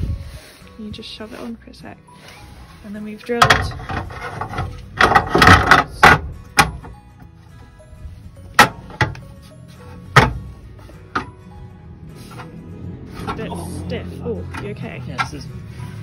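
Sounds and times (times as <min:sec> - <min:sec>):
background music: 0:00.0 - 0:16.0
metal clattering: 0:03.3 - 0:06.9.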